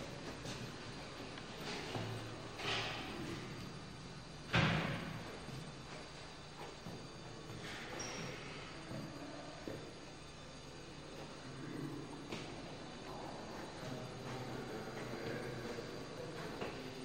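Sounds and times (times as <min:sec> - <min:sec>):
loud thump: 0:04.5 - 0:05.2.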